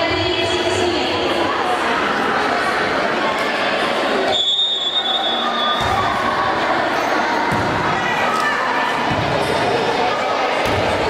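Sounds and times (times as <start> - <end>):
spectators crowd noise: 0.0 - 11.0
referee whistle blast: 4.3 - 5.8.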